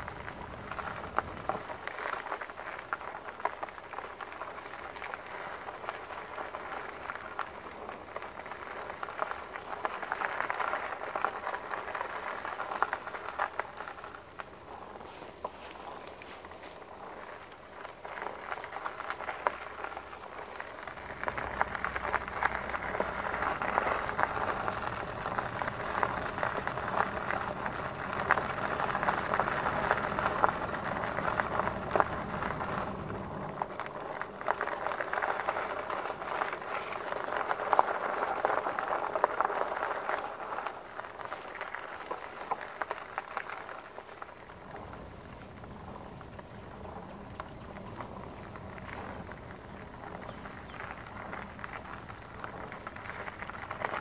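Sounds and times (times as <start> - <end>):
bike tyres crunching on gravel: 0.0 - 54.0.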